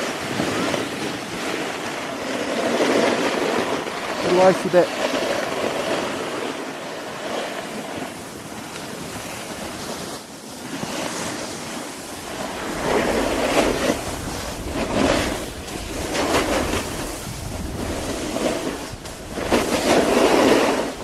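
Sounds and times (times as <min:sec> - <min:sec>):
snowboards scraping over snow: 0:00.0 - 0:21.0
wind rushing over microphone: 0:00.0 - 0:21.0.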